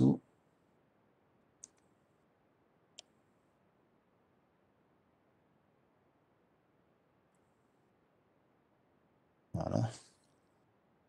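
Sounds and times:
computer mouse click: 0:01.6 - 0:01.9.

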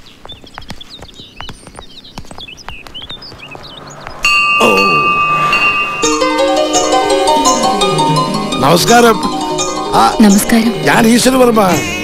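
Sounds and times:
small birds chirping: 0:00.0 - 0:12.0
metal temple bell ringing: 0:04.2 - 0:10.0.

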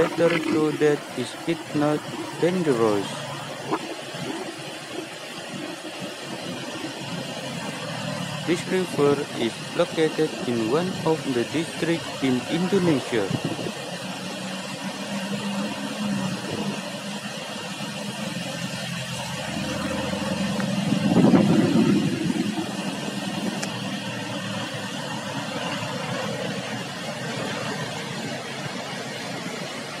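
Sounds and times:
low engine hum: 0:00.0 - 0:30.0
river rushing through weir: 0:00.0 - 0:30.0.

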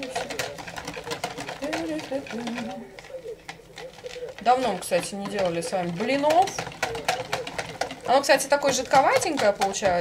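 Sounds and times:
whisk clicking against bowl: 0:00.0 - 0:10.0.

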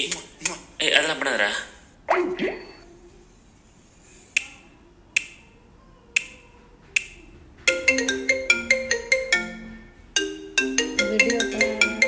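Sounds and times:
marimba-like ringtone melody: 0:07.7 - 0:12.0.

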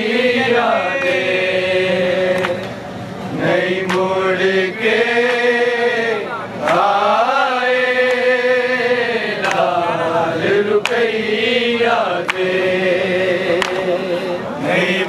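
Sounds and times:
men chanting a lament: 0:00.0 - 0:15.0.

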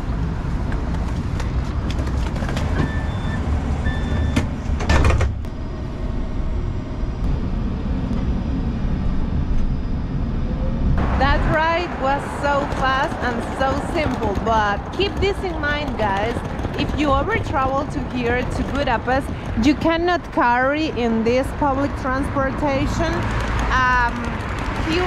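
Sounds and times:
passenger bustle: 0:00.0 - 0:25.0
tram rumbling: 0:00.0 - 0:25.0
tram doors bumping shut: 0:02.2 - 0:05.5
people talking: 0:11.1 - 0:25.0.

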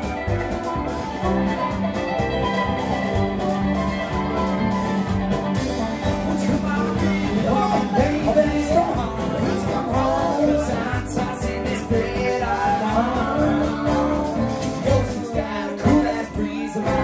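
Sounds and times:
drum kit beat: 0:00.0 - 0:17.0
live folk-rock band playing: 0:00.0 - 0:17.0
person singing: 0:06.0 - 0:17.0.

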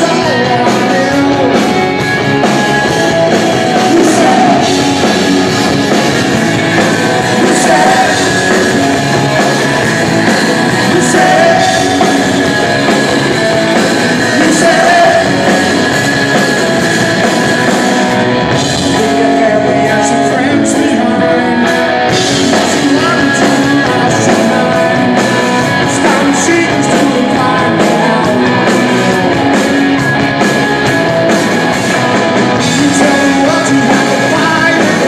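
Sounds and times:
bass guitar: 0:00.0 - 0:35.0
drums: 0:00.0 - 0:35.0
electric guitar: 0:00.0 - 0:35.0
live rock band playing: 0:00.0 - 0:35.0.

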